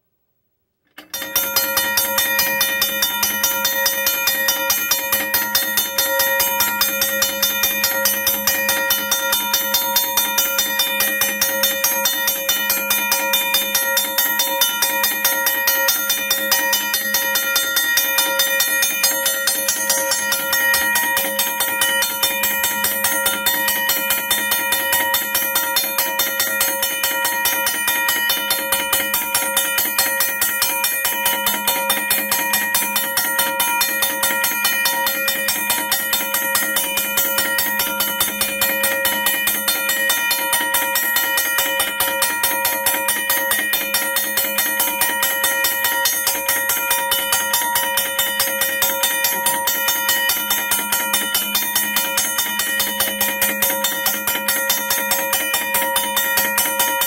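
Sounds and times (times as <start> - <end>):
railroad crossing bell ringing: 1.1 - 57.0.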